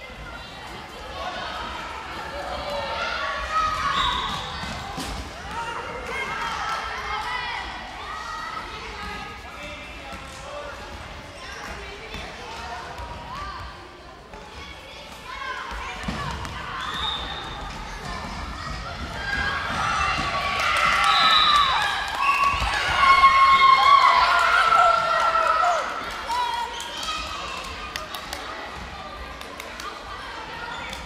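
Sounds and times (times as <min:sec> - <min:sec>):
children shouting: 0:19.0 - 0:27.7.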